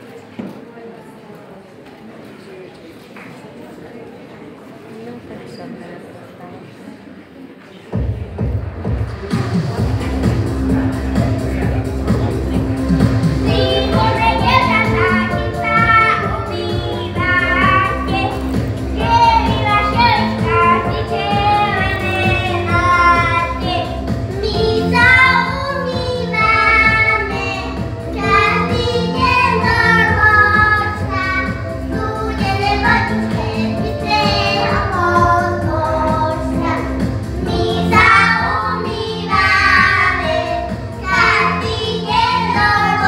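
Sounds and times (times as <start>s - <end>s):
children singing: 13.4s - 43.0s.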